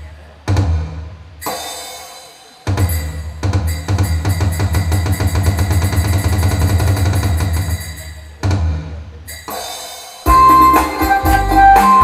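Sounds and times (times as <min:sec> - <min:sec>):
drum kit fast beat: 0:00.0 - 0:12.0
heavy bass: 0:10.3 - 0:12.0.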